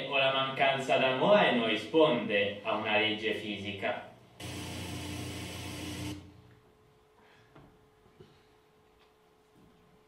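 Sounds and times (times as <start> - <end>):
low buzz: 4.4 - 6.5.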